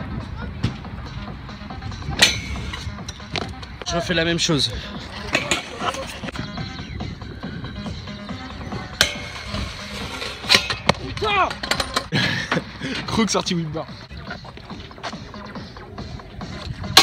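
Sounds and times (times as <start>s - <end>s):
music: 0.0s - 17.0s
voices: 1.6s - 16.6s
scooter striking metal rail: 2.2s - 3.4s, 5.3s - 6.1s, 8.9s - 12.1s.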